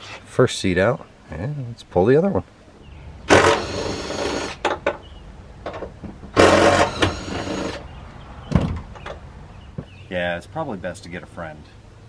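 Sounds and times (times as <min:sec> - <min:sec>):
dull thud: 0:08.5 - 0:10.0
sharp knocks: 0:08.5 - 0:10.0.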